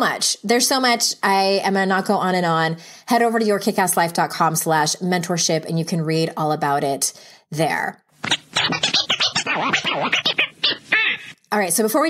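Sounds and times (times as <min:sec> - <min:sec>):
rapid scratching sound effect: 0:08.2 - 0:11.4.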